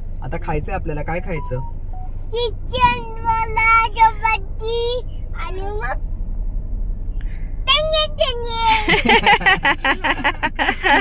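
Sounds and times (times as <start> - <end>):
small child singing: 2.4 - 6.0.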